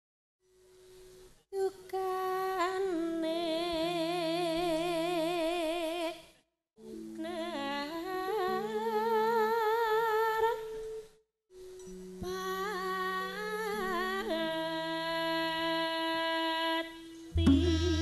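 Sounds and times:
woman singing ornamented melody: 0:01.5 - 0:06.2, 0:06.9 - 0:11.1, 0:12.2 - 0:18.0
low accompanying notes: 0:17.3 - 0:18.0.

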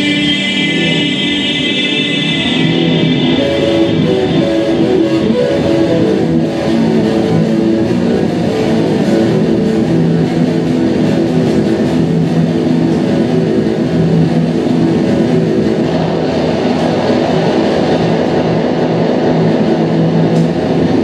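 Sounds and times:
pulsing low drone: 0:00.0 - 0:21.0.

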